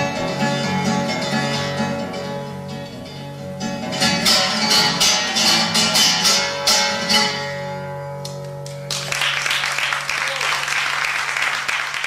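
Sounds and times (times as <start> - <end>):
acoustic guitar strumming: 0.0 - 8.9.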